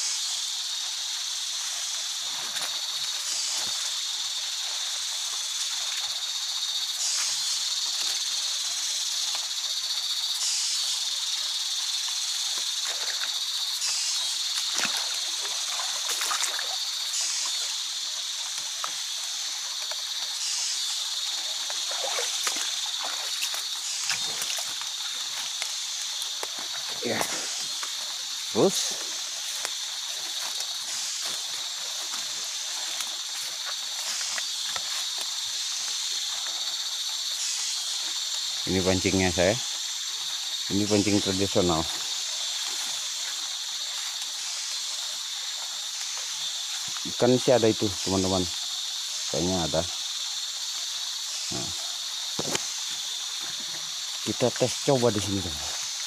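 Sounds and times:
high-pitched insect chorus: 0:00.0 - 0:56.0
footsteps in undergrowth: 0:00.7 - 0:10.3, 0:11.2 - 0:38.6, 0:52.1 - 0:54.2
rustling through undergrowth: 0:00.7 - 0:38.7.

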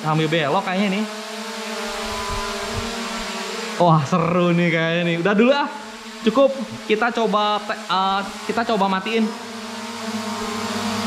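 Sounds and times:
drone buzzing hum: 0:00.0 - 0:11.0.

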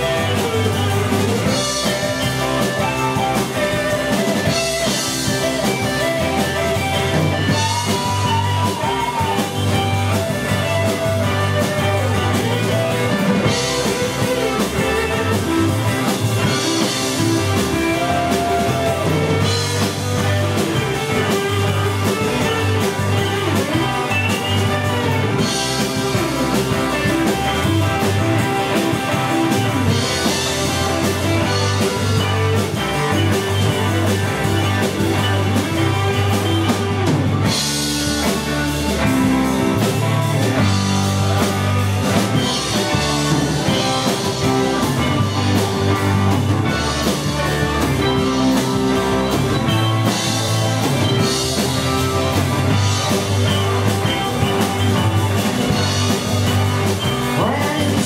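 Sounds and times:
bass guitar: 0:00.0 - 0:58.0
drum kit with cymbals: 0:00.0 - 0:58.0
electric guitars: 0:00.0 - 0:58.0.

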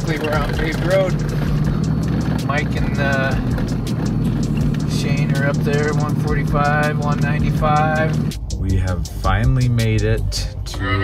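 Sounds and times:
tyres on snowy road: 0:00.0 - 0:08.3
music: 0:00.0 - 0:11.0
vehicle engine droning: 0:00.0 - 0:11.0.

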